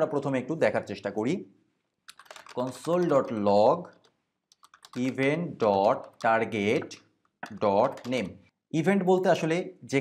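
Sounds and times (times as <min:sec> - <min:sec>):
man talking: 0:02.5 - 0:04.0, 0:05.0 - 0:10.0.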